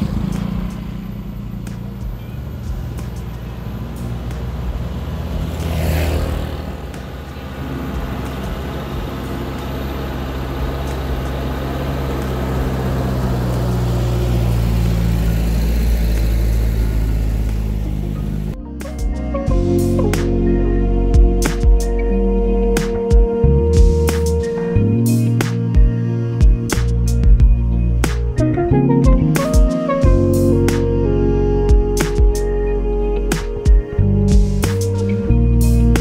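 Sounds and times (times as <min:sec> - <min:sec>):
motor scooter passing: 0:00.0 - 0:18.6
truck engine drone: 0:00.0 - 0:36.0.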